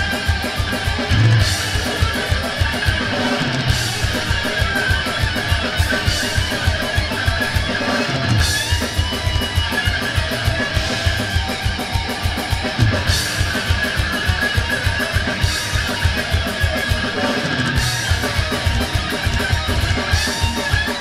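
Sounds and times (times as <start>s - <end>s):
distorted electric guitars: 0.0s - 21.0s
rapid kick-drum beat: 0.0s - 21.0s.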